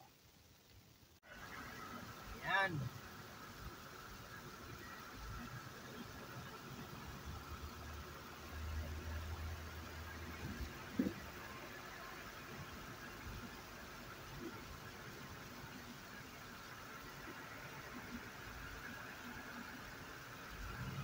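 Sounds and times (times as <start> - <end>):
car road noise: 1.3 - 21.0.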